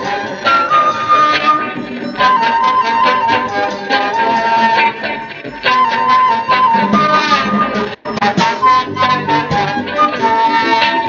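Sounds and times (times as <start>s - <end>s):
lead instrument melody: 0.0s - 11.0s
reggae band playing: 0.0s - 11.0s.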